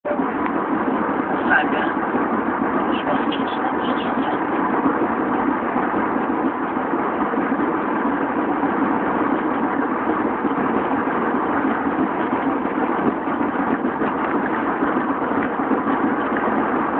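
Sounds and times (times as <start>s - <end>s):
car engine running: 0.0s - 16.9s.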